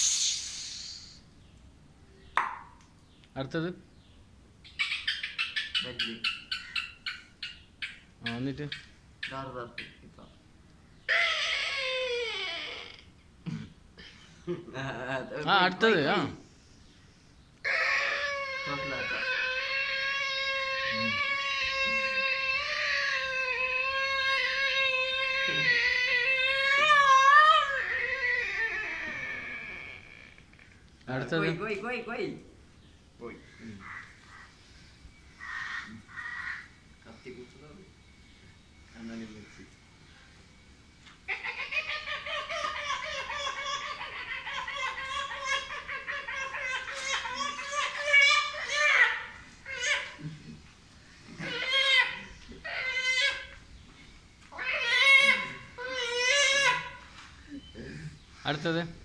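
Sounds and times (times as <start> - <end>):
man imitating animal call: 17.7 - 30.3.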